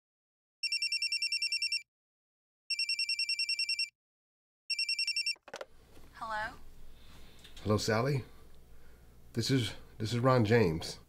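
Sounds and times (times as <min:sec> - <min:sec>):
telephone ringing with warbling trill: 0:00.6 - 0:01.8, 0:02.7 - 0:03.9, 0:04.7 - 0:05.4.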